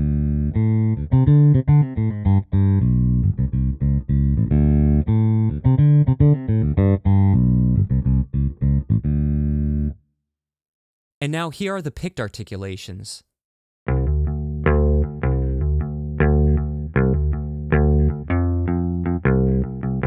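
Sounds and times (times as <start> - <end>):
electric bass line: 0.0 - 10.0, 13.9 - 20.0.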